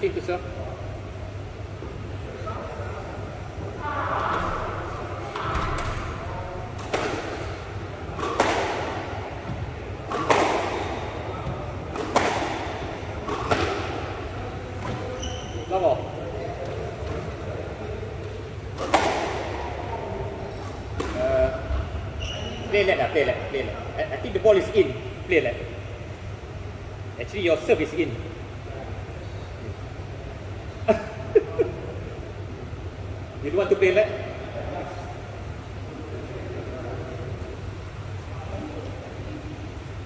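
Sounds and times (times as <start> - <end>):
squash ball cracking off rackets: 6.7 - 14.1, 18.7 - 19.6.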